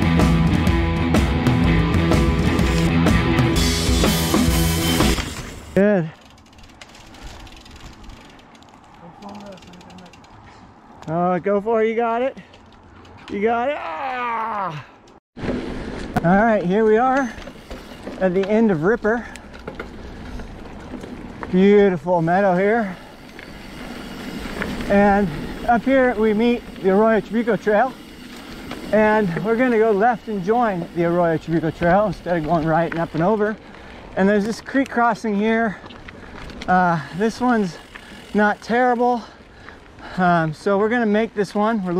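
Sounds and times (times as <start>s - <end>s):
rock music: 0.0s - 5.7s
bike freewheel hub ratcheting: 3.6s - 10.4s, 17.1s - 21.4s, 22.3s - 35.0s, 35.7s - 40.6s
person shouting: 13.5s - 15.0s.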